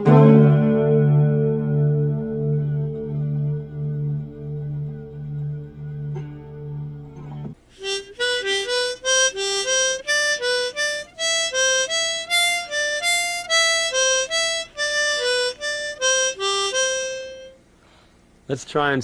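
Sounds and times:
guitar piece: 0.0s - 17.7s
harmonica playing blues riff: 7.7s - 17.6s.

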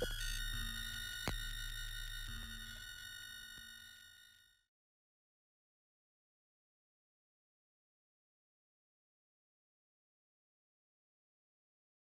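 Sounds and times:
high synthesized sine tones: 0.0s - 4.2s.

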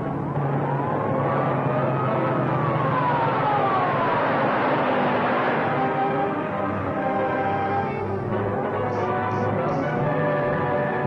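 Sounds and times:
car engine drone: 0.0s - 11.0s
car siren wailing: 0.0s - 11.0s
film soundtrack hiss: 3.2s - 11.0s.

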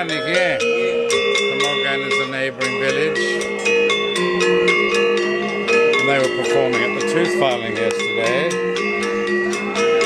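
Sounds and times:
metallophones playing quick melody: 0.0s - 10.0s.

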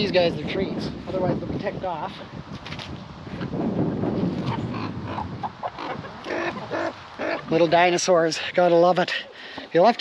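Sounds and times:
chickens clucking: 4.3s - 8.0s.

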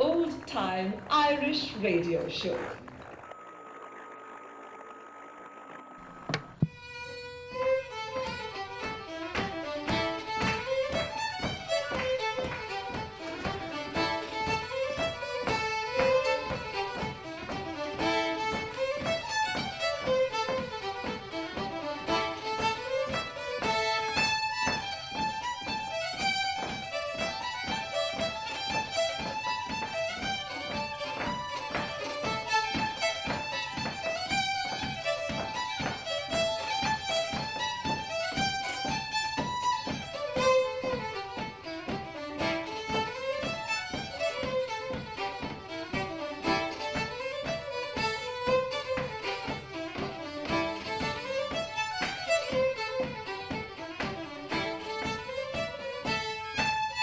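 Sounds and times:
fiddles playing folk tune: 6.0s - 57.0s.

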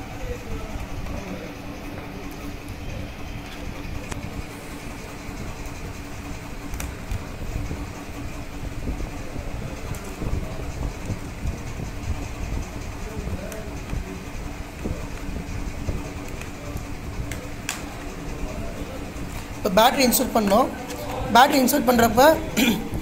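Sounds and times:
low rumble and hum: 0.0s - 23.0s.

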